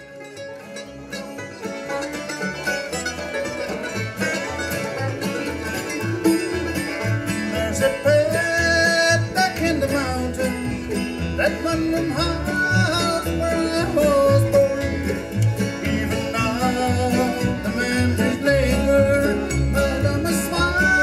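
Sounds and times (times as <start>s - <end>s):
banjo: 0.0s - 21.0s
guitar: 0.0s - 21.0s.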